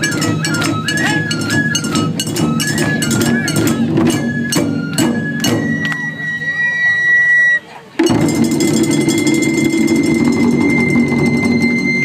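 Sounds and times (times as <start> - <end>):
taiko drums fast roll: 8.0 - 12.0.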